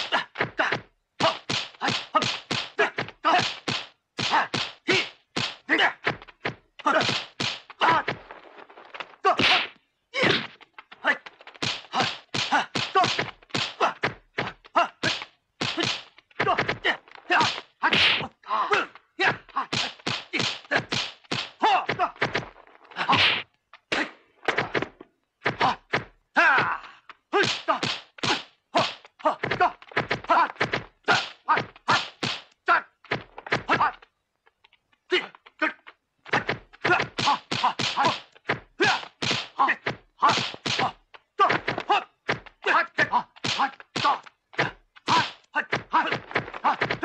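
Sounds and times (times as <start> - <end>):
punch and block impacts: 0.0 - 18.3, 19.2 - 26.8, 27.4 - 34.0, 36.3 - 47.0.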